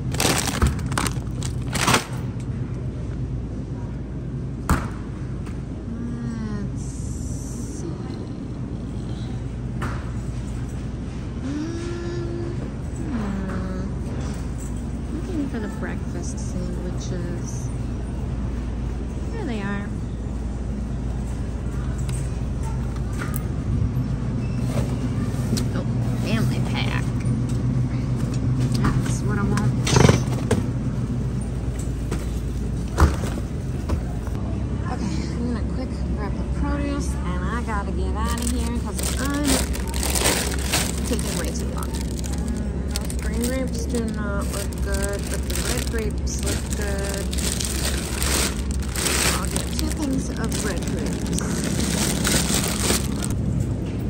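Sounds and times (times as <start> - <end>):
plastic bags crinkling: 0.0 - 2.2, 38.2 - 53.4
steady low hum: 0.0 - 54.0
faint voices: 33.8 - 53.4.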